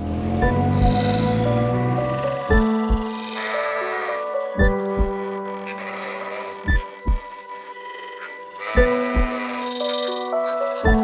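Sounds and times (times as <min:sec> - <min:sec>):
background music of sustained tones: 0:00.0 - 0:11.0
deep drum beat: 0:00.4 - 0:01.0, 0:02.5 - 0:03.1, 0:04.6 - 0:05.2, 0:06.7 - 0:07.3, 0:08.8 - 0:09.4
sheep bleating: 0:02.7 - 0:10.9.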